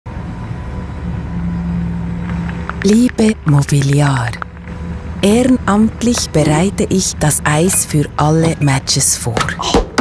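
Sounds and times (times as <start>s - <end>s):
ice resurfacing machine rumbling: 0.1s - 9.2s.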